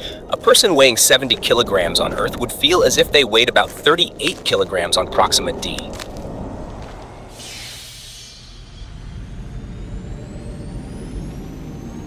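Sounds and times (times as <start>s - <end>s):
hissing whoosh: 0.0s - 10.4s
low rumble: 0.0s - 12.0s.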